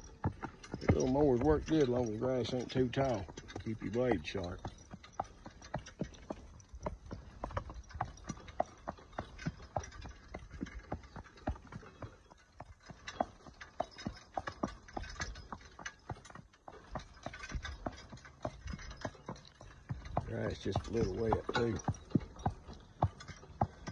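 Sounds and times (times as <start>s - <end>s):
horse hooves clip-clopping on concrete: 0.0s - 23.9s
metal cart rolling and rattling: 0.0s - 23.9s.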